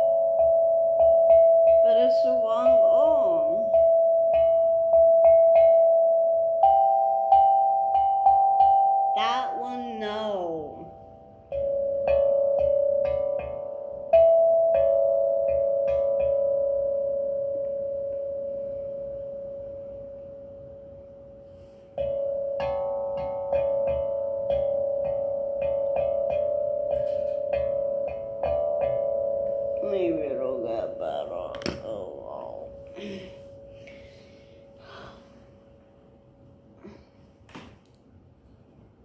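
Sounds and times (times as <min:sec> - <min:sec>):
steel tongue drum notes: 0:00.0 - 0:35.7.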